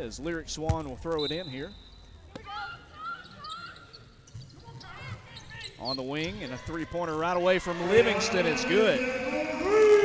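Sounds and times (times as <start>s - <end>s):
faint crowd voices: 2.1s - 10.0s.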